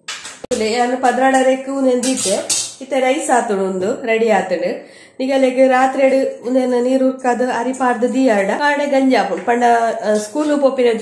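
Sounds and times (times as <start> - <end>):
woman talking: 0.5 - 11.0.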